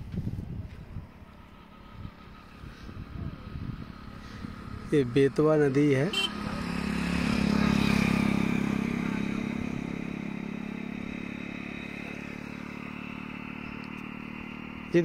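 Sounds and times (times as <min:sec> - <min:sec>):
vehicle engine passing by: 0:00.0 - 0:15.0.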